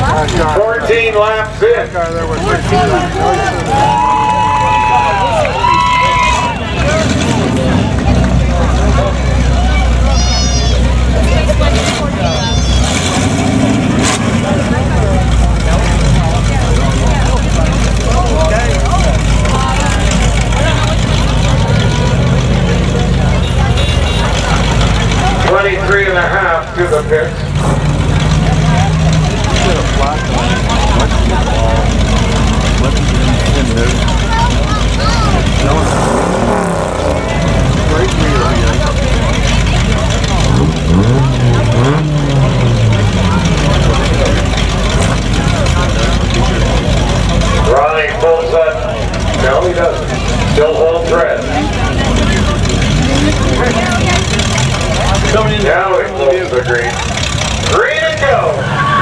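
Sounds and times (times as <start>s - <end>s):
car engines rumbling: 0.0s - 59.0s
voices: 0.0s - 59.0s
engine revving: 10.8s - 59.0s.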